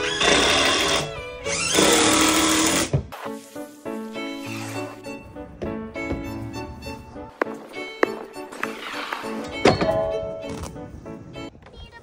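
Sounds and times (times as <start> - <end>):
power drill driving screw: 0.0 - 2.9
background music: 0.0 - 12.0.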